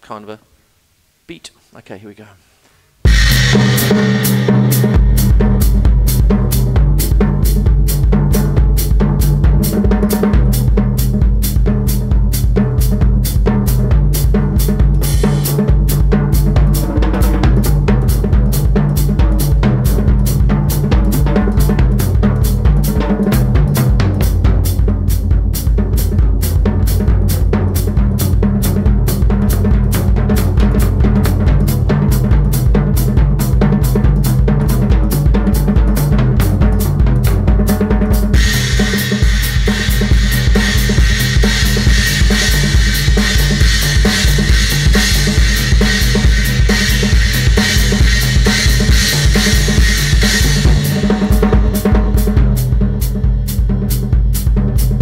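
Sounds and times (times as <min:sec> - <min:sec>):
bass drum: 0:03.0 - 0:55.0
snare drum with snares off: 0:03.0 - 0:55.0
toms played with mallets: 0:26.0 - 0:54.2.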